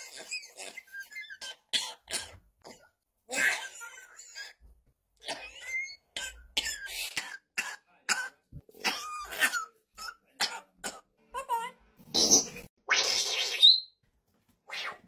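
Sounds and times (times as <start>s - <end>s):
parrot mimicking coughs: 0.0s - 4.6s, 5.2s - 11.1s
parrot squeak: 5.4s - 6.1s, 12.2s - 14.0s.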